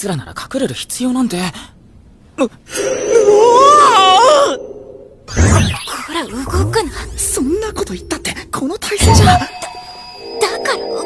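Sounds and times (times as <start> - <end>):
woman moaning: 3.1 - 4.6.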